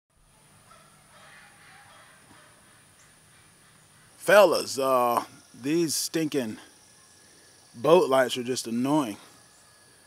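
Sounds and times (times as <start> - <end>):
distant bird calls: 0.2 - 10.0.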